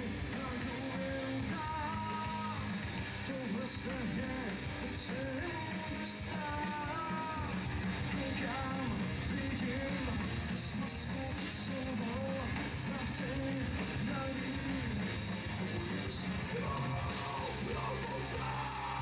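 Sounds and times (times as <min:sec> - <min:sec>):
drums: 0:00.0 - 0:19.0
electric guitars: 0:00.0 - 0:19.0
person singing: 0:00.0 - 0:19.0.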